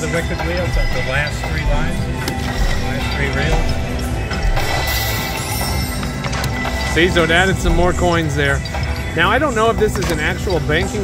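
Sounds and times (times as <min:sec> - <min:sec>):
slot machine music: 0:00.0 - 0:11.0
slot machine sound effects: 0:00.0 - 0:11.0.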